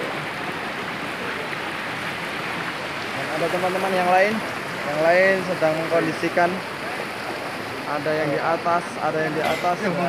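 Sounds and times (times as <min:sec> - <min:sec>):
river rushing through rapids: 0:00.0 - 0:10.0.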